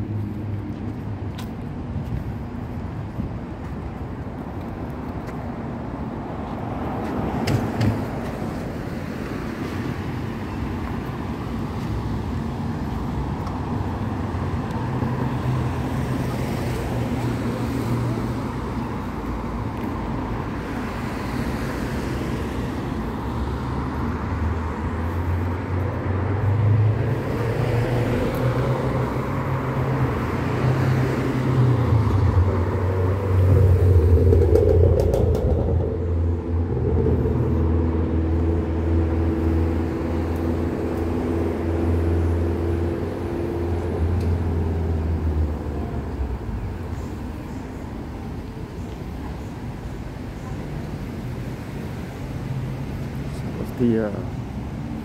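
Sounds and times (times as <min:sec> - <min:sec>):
cars driving past: 0:00.0 - 0:55.0
engine hum: 0:00.0 - 0:55.0.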